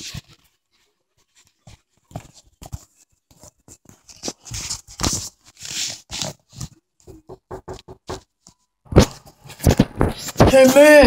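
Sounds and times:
footsteps: 0:08.9 - 0:11.0.

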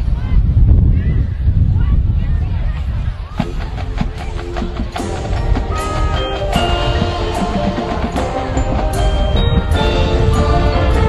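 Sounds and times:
marching band mallet percussion: 0:03.5 - 0:11.0.

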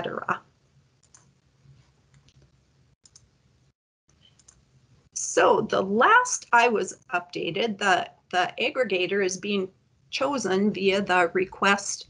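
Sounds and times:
soft clicks: 0:01.0 - 0:03.3, 0:04.1 - 0:04.6.

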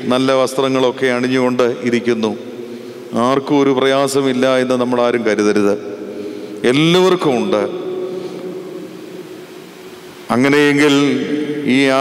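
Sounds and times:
sound system hiss and hum: 0:00.0 - 0:12.0.

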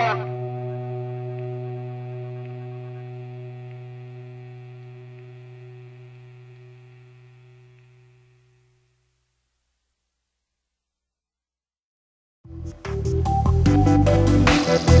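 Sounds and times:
distorted electric guitar note: 0:00.0 - 0:09.3.

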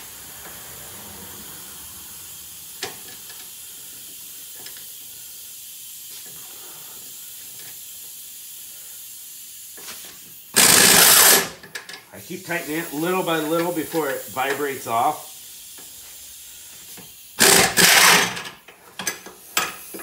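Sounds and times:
steady background hiss: 0:00.0 - 0:20.0
power wrench burst: 0:10.5 - 0:11.6, 0:17.4 - 0:18.6.

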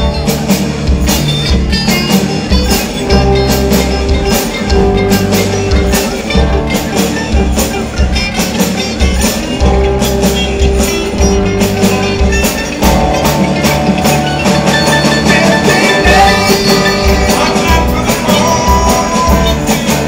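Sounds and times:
banjo: 0:00.0 - 0:20.0
congas: 0:00.0 - 0:20.0
drum kit: 0:00.0 - 0:20.0
electric bass: 0:00.0 - 0:20.0
electric guitar: 0:00.0 - 0:20.0.

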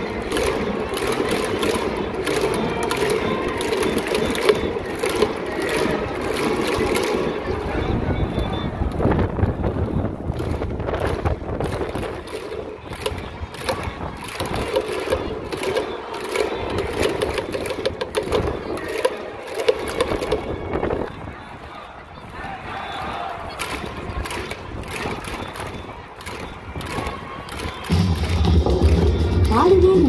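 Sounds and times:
crowd chanting in rhythm: 0:00.0 - 0:08.8, 0:12.0 - 0:30.0
rhythmic clapping: 0:00.0 - 0:09.1, 0:10.2 - 0:21.2, 0:22.3 - 0:30.0.

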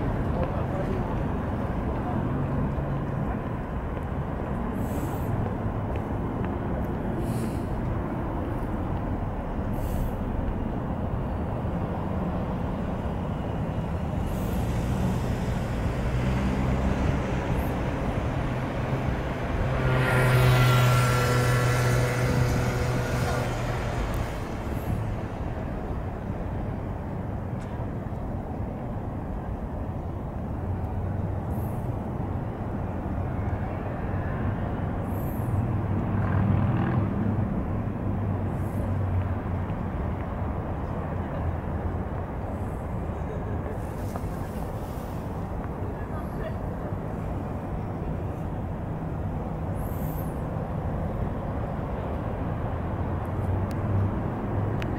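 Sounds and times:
distant traffic rumble: 0:00.0 - 0:54.9
vehicle passing by: 0:04.4 - 0:26.8, 0:30.6 - 0:54.9.

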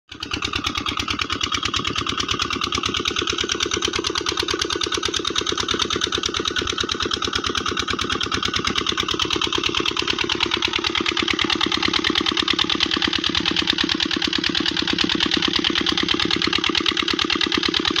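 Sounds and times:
diesel engine running steadily: 0:00.1 - 0:18.0.

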